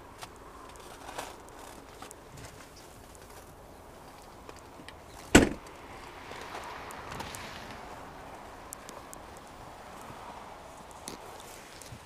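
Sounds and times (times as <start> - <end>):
car liftgate closing with thud: 5.3 - 5.6.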